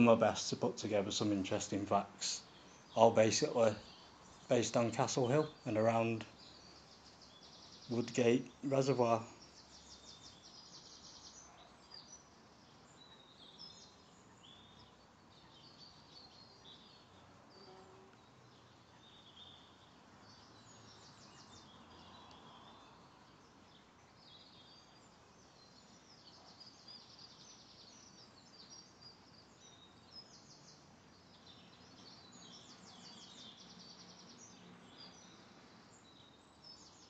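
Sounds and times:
quiet outdoor background noise: 0.0s - 37.0s
small birds chirping and trilling: 0.0s - 37.0s.

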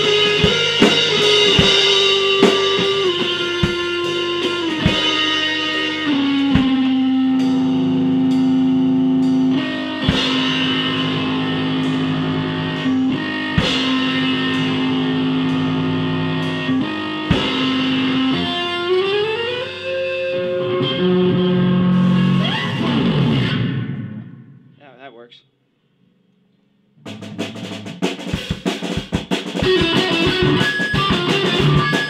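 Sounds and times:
drum hits: 0.0s - 5.4s, 27.0s - 32.0s
rock band playing: 0.0s - 24.5s, 27.0s - 32.0s.

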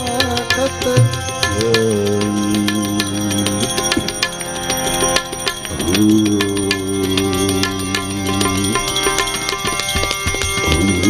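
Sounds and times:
hand cymbals ringing: 0.0s - 11.0s
harmonium chords: 0.0s - 11.0s.

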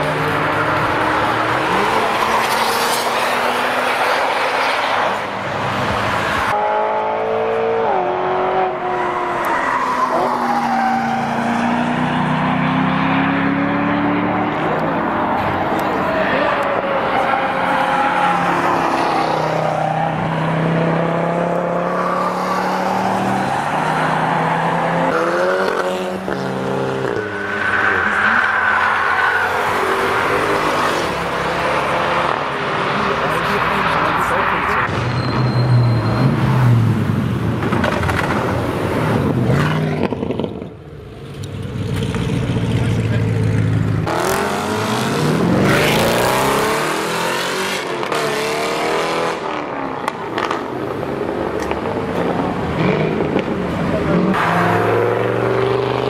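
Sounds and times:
race cars driving past: 0.0s - 56.0s.

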